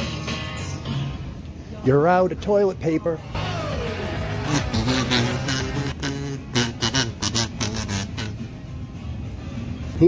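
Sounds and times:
kazoo buzzy notes: 3.4s - 8.5s.

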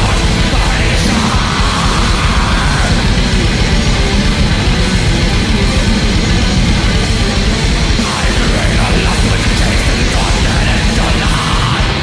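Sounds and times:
distorted guitars and bass: 0.0s - 12.0s
fast drumming: 0.0s - 12.0s.

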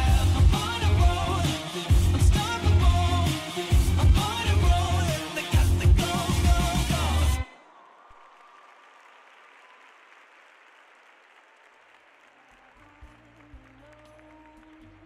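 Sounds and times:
music: 0.0s - 7.5s, 12.6s - 15.0s
crowd applause: 6.1s - 15.0s.

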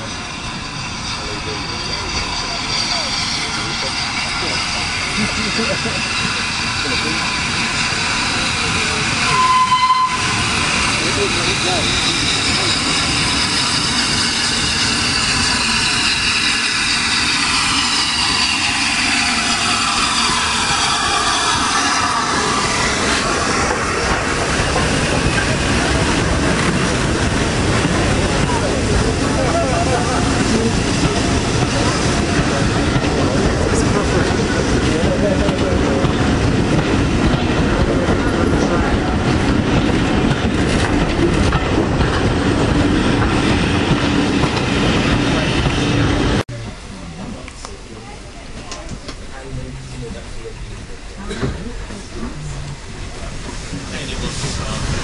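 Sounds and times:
train wheels rumbling and clattering: 0.0s - 55.0s.

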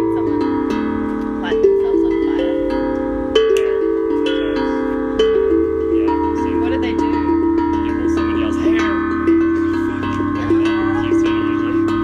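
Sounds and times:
steel tongue drum melody: 0.0s - 12.0s.

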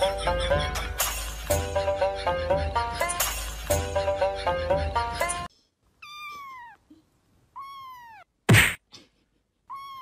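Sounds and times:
kitten meowing: 6.0s - 6.8s, 7.5s - 8.3s, 9.7s - 10.0s.

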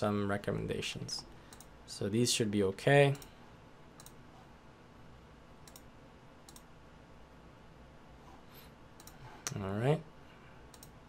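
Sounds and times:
sharp computer mouse clicks: 4.0s - 4.2s, 5.6s - 6.7s, 9.0s - 9.6s, 10.7s - 11.0s.

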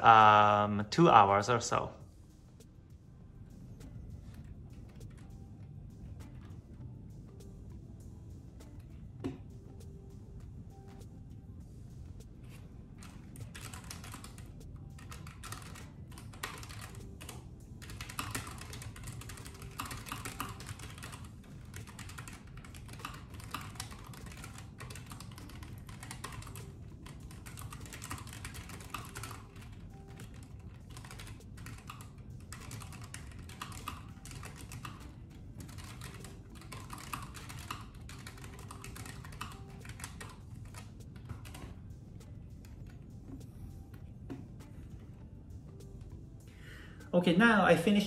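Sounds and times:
computer keyboard typing: 4.2s - 5.4s, 12.4s - 45.1s.

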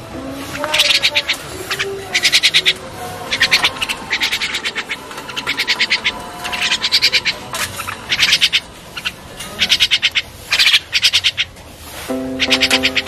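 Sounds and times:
birds harsh rapid clicking: 0.6s - 11.6s, 12.4s - 13.0s.

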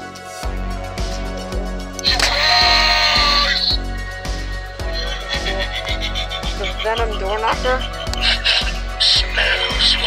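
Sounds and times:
loud electronic sound clip: 2.0s - 10.0s.

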